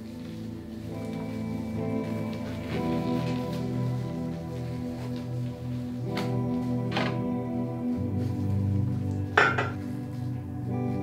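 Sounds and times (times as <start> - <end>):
background music: 0.0 - 11.0
glass bottles clinking: 9.4 - 9.8.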